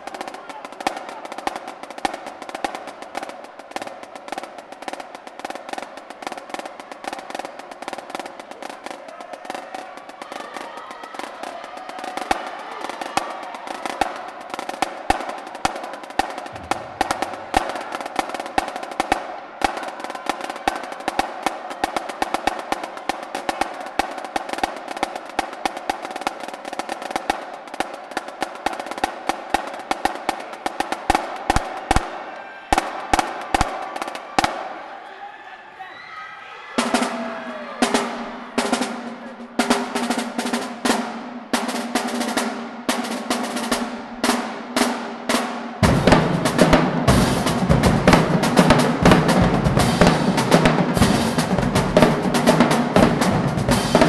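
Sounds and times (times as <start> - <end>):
marching drumline snare cadence: 0.0 - 34.9, 36.8 - 54.0.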